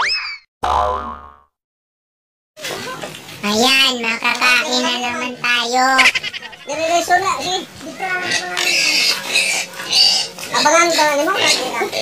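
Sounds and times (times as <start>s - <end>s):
cartoon boing: 0.0s - 1.5s.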